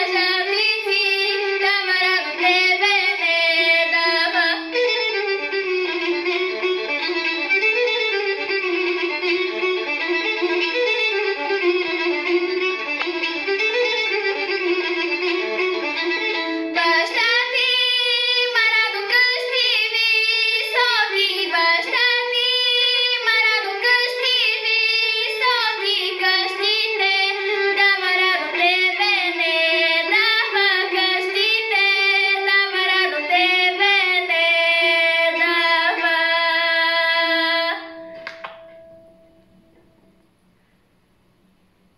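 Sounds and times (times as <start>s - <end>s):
girl singing folk song: 0.0s - 5.5s, 16.7s - 38.1s
recorded instrumental accompaniment: 0.0s - 40.8s.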